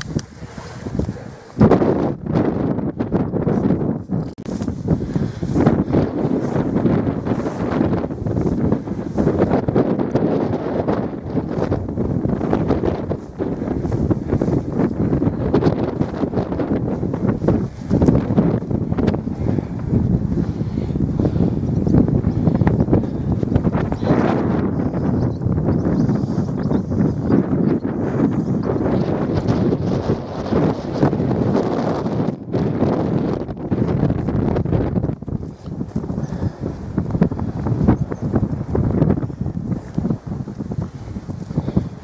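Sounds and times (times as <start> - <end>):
wind gusting on microphone: 0.0 - 42.0.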